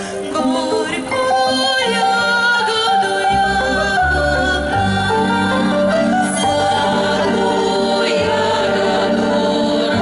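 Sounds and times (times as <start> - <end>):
instrumental accompaniment: 0.0 - 10.0
women's vocal group singing: 0.2 - 10.0.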